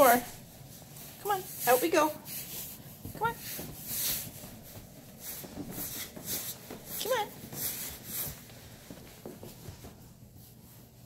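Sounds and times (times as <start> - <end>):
cloth and leash rubbing: 0.0 - 11.0
dog shuffling on carpet: 0.0 - 11.0
person walking on carpet: 0.0 - 11.0.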